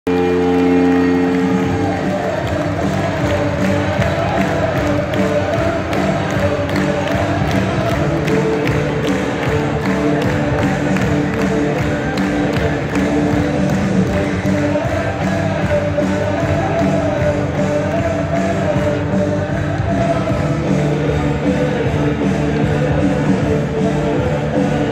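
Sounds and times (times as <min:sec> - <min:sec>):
goal horn blast: 0:00.1 - 0:02.2
crowd cheering: 0:00.1 - 0:20.6
song over loudspeakers: 0:00.1 - 0:24.9.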